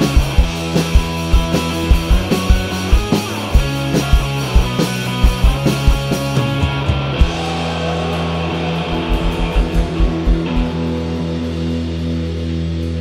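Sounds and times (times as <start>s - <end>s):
rock band sustained chord: 0.0s - 13.0s.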